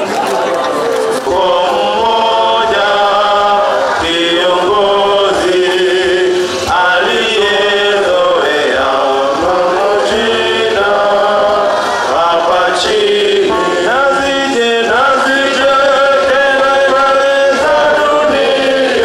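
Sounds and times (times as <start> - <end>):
congregation singing a hymn: 0.0 - 19.0.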